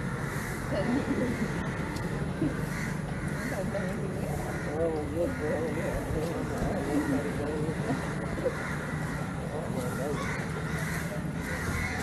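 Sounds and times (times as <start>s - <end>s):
people's voices in background: 0.3s - 12.0s.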